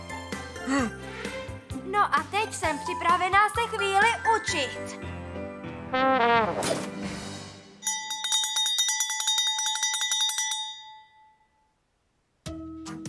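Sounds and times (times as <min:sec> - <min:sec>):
trombone sliding notes: 0:05.8 - 0:06.8
bell ringing rapidly: 0:07.8 - 0:11.4.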